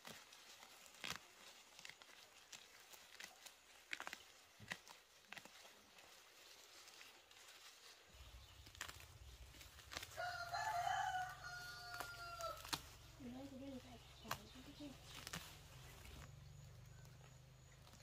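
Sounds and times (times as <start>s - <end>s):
weeds being pulled from soil: 0.0s - 18.0s
rooster crowing: 10.1s - 12.8s.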